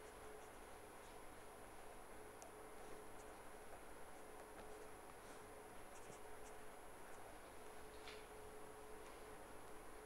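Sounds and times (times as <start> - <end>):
low hum and hiss: 0.0 - 10.0.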